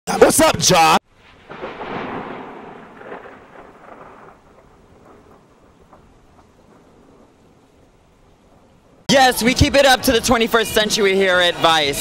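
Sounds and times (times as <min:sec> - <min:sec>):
noisy crash-like burst: 0:01.1 - 0:07.6.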